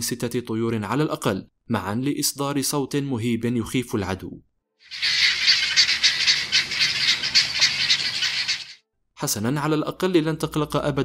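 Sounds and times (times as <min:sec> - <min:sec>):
guineafowl calling: 0:04.9 - 0:08.8.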